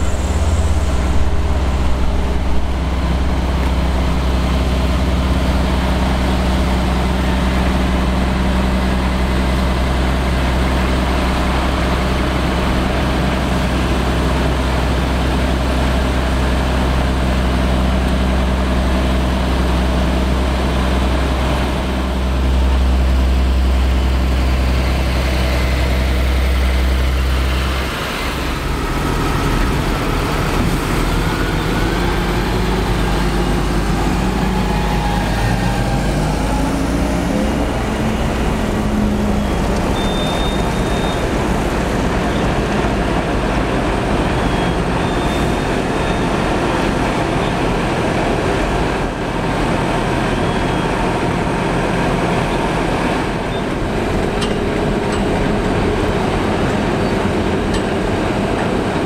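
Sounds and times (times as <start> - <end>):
tractor diesel engines running: 0.0 - 59.0.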